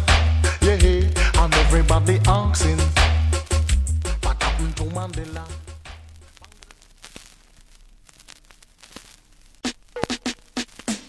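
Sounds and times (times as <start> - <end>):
vinyl record hiss: 0.0 - 11.0
vinyl crackles and clicks: 2.3 - 11.0.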